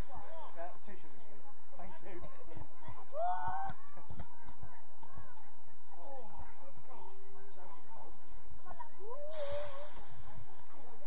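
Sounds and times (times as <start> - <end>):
faint background chatter: 0.0 - 11.0.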